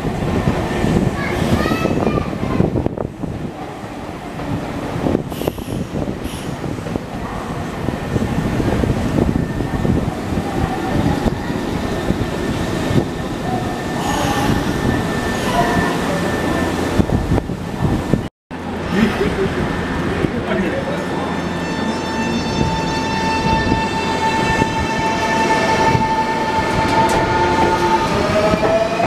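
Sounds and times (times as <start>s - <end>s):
train wheels rumbling on rails: 0.0s - 29.0s.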